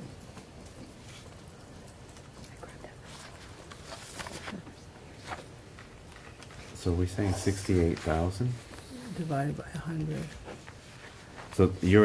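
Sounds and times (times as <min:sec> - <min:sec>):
papers rustling: 0:00.3 - 0:08.9, 0:09.9 - 0:12.0.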